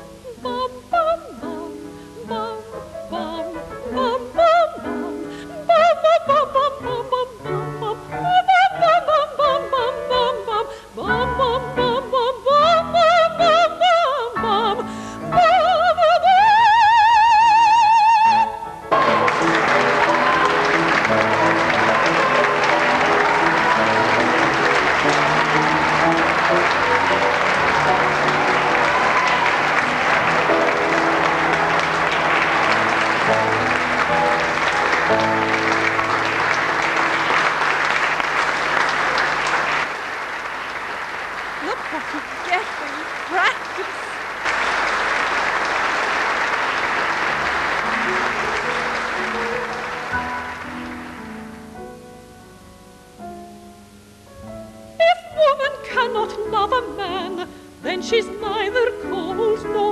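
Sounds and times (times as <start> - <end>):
audience applause: 18.9 - 51.9
small band playing: 18.9 - 52.0.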